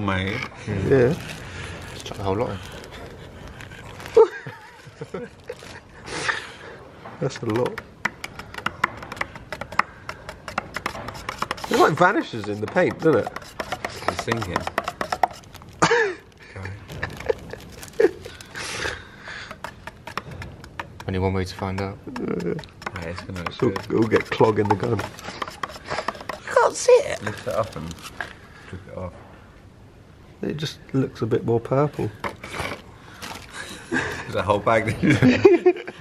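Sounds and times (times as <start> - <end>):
stick scraping metal paint tin: 7.2 - 15.8, 19.4 - 28.4.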